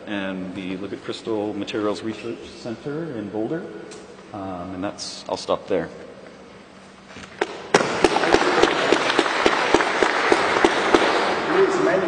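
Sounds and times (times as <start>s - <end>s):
close single claps: 7.4s - 11.4s
audience applauding: 8.0s - 12.0s.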